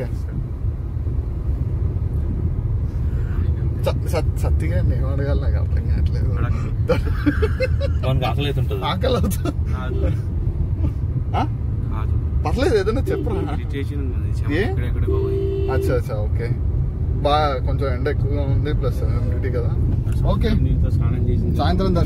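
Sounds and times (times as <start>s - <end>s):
men talking: 0.0s - 0.4s, 3.1s - 22.0s.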